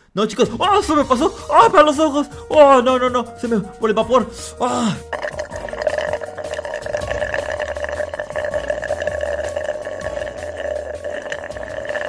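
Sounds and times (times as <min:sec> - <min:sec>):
slurping through a straw: 0:04.9 - 0:12.0.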